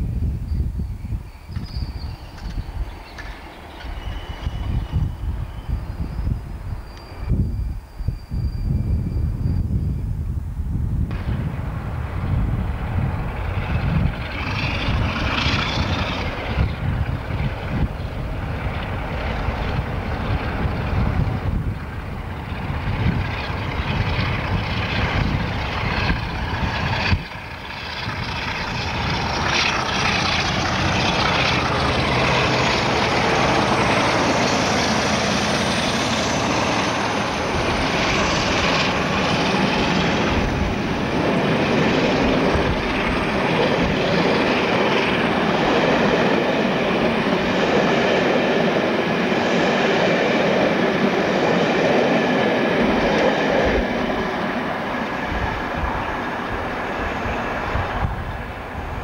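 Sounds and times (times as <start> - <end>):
train wheels on rails: 1.1 - 9.9, 11.1 - 59.0
diesel train engine running: 1.6 - 9.5, 11.0 - 59.0.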